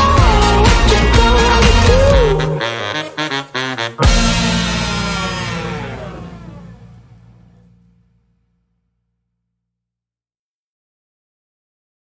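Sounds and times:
band final chord with brass: 4.0s - 7.9s.

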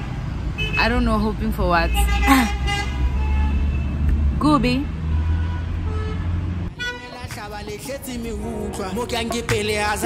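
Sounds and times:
low rumble of street traffic: 0.0s - 10.0s
music: 6.8s - 10.0s.

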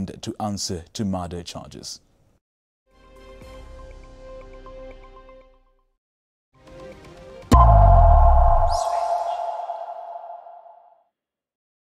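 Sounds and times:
deep electronic boom: 7.5s - 10.7s
ringing tone: 7.5s - 10.8s
short high swish: 7.5s - 10.8s.

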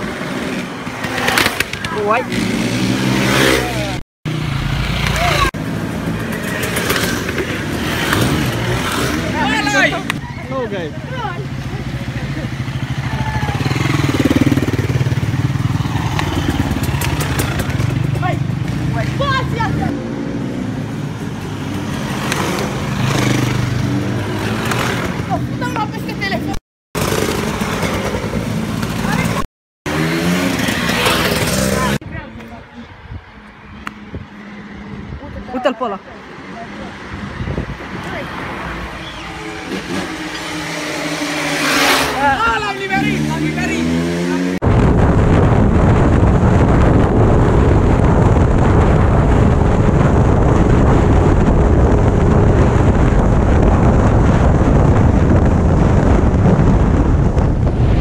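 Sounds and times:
motorcycles revving past: 0.0s - 25.6s, 27.0s - 32.0s, 35.6s - 44.6s
traffic passing: 0.0s - 58.0s
people shouting and whooping: 12.9s - 13.9s.

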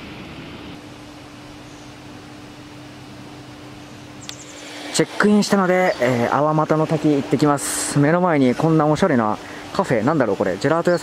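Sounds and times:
even hiss: 0.0s - 11.0s
low mechanical hum: 0.0s - 11.0s
short click: 4.2s - 4.5s.

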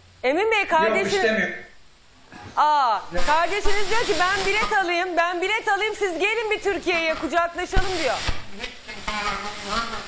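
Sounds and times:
hissing crackling line noise: 1.7s - 10.0s.

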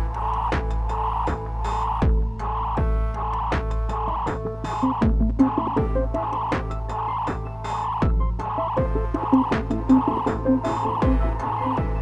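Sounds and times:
deep sustained bass: 0.0s - 12.0s
throbbing croaky synth tone: 0.0s - 12.0s
kick drums falling in pitch: 0.5s - 12.0s.

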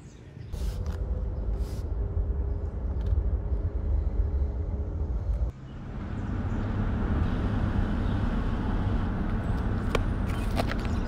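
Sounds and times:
car cabin engine and road rumble: 0.6s - 11.0s.

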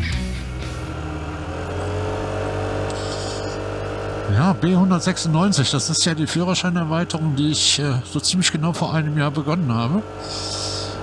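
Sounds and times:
scooter engine running: 0.0s - 11.0s.

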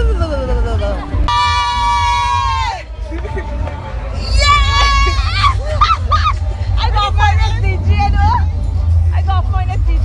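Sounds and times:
low rumble: 0.0s - 10.0s
people talking and calling out: 0.0s - 10.0s.

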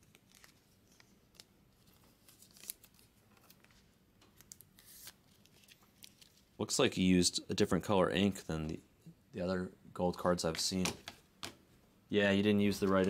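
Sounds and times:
card rustling: 0.0s - 6.6s, 12.5s - 13.0s.

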